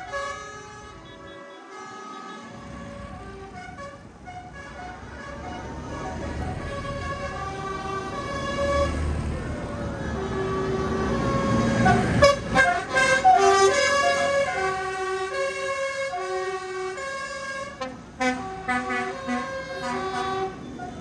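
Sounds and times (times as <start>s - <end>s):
horn-like tune: 0.0s - 5.7s, 10.2s - 20.6s
tractor engines rumbling: 0.0s - 21.0s.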